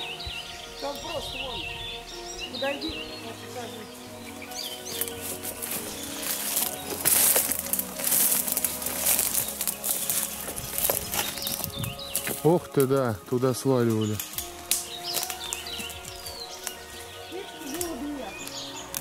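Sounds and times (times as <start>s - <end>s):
birds singing: 0.0s - 19.0s
rustling through undergrowth: 0.0s - 19.0s.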